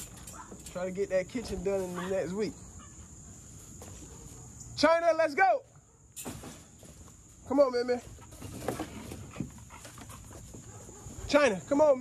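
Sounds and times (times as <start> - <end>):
dog panting: 9.1 - 11.2.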